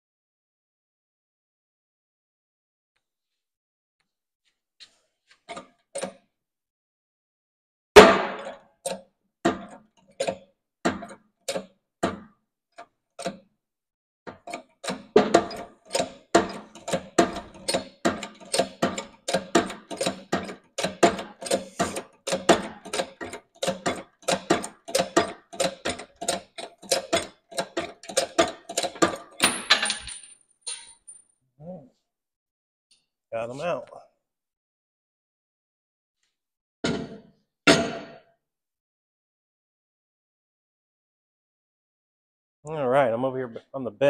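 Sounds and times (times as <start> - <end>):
hydraulic press pumping: 14.3 - 29.4.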